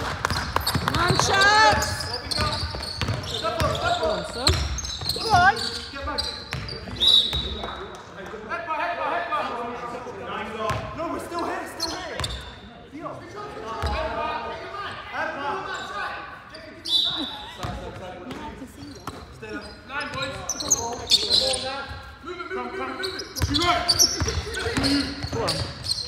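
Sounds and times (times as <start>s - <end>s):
basketball bouncing on wooden court: 0.0s - 7.6s, 10.7s - 10.9s, 23.4s - 26.0s
voices echoing in hall: 0.0s - 26.0s.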